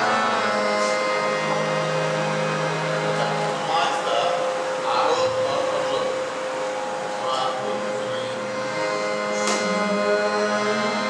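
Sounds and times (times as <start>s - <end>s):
drone of held notes: 0.0s - 11.0s.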